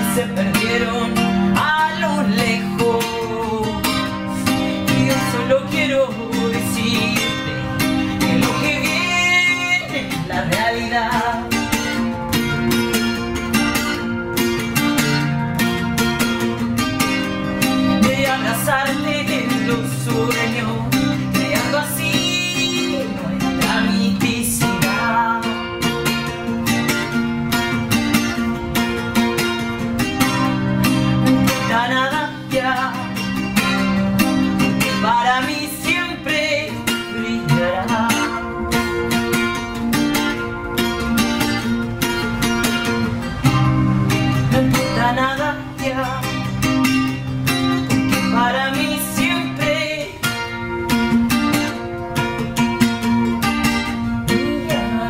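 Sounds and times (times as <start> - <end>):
woman singing: 0.0 - 12.1, 17.6 - 26.3, 31.0 - 39.1, 44.3 - 47.2, 47.8 - 50.6, 54.2 - 55.0
acoustic guitar strumming: 0.0 - 55.0.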